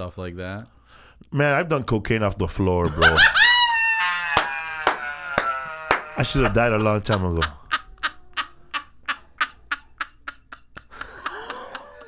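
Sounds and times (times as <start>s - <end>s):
man laughing: 2.9s - 12.0s.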